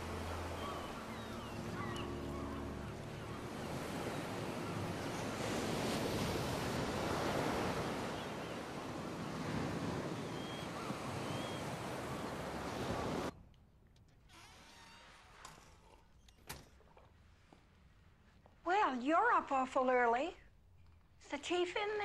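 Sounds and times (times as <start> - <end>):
low steady drone: 0.0 - 5.5
waves washing in: 0.0 - 13.3.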